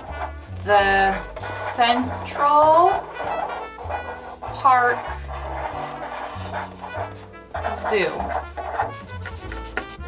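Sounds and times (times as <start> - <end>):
instrumental music with bass line: 0.0 - 10.0
person speaking: 0.6 - 8.8.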